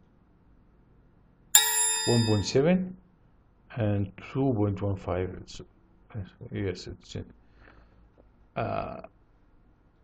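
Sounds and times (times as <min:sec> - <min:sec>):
computer alert chime: 0:01.6 - 0:02.6.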